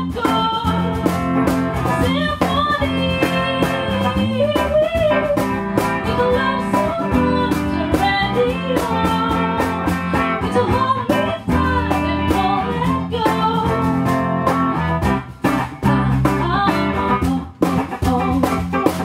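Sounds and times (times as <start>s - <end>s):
electric bass: 0.0s - 19.0s
electric guitar: 0.0s - 19.0s
percussion: 0.0s - 19.0s
woman singing into microphone: 0.0s - 19.0s.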